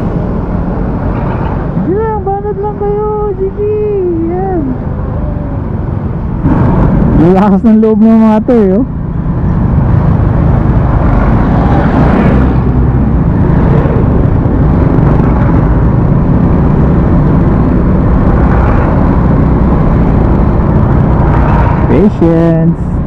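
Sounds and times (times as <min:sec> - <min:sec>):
wind noise on microphone: 0:04.8 - 0:07.5, 0:09.0 - 0:23.0.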